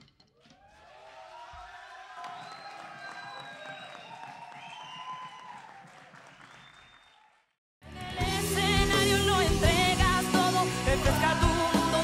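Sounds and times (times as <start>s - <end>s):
audience applause and cheering: 0.6s - 8.2s
music: 7.8s - 12.0s.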